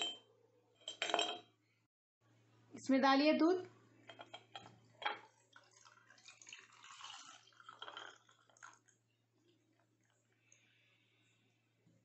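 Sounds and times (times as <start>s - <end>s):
milk pouring into glass: 5.2s - 10.7s.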